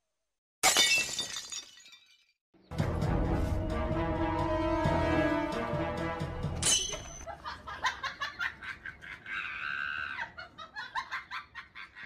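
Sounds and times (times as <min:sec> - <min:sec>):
man laughing hard: 0:07.3 - 0:12.0
high-pitched squeal of laughter: 0:07.8 - 0:12.0.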